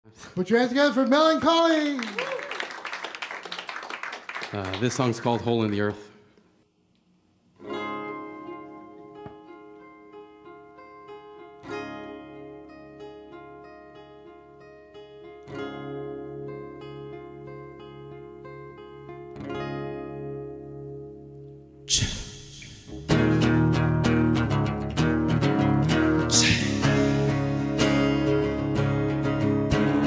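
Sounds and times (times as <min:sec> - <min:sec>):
acoustic guitar chord ringing: 0:07.6 - 0:30.0.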